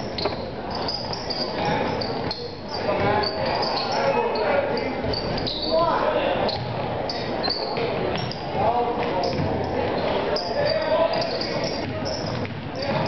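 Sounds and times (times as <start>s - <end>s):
sneakers squeaking on court: 0.0s - 13.0s
basketball bouncing: 6.5s - 6.9s, 7.8s - 9.7s, 11.1s - 13.0s.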